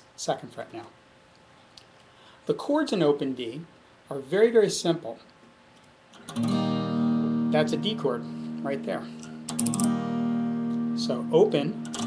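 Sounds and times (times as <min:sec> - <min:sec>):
guitar chord strummed and ringing: 0:06.2 - 0:12.0.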